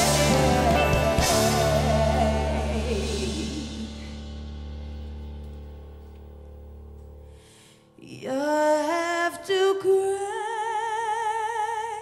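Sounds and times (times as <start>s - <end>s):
person singing: 0.0s - 4.4s
band sustained chord: 0.0s - 7.4s.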